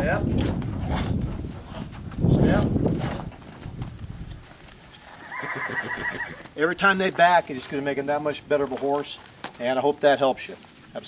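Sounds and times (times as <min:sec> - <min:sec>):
hooves knocking on trailer floor: 0:00.0 - 0:11.0
horse whinnying: 0:04.9 - 0:06.6.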